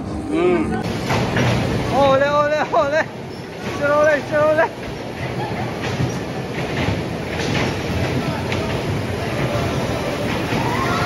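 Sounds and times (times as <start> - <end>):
bumper cars rumbling: 0.0 - 11.0.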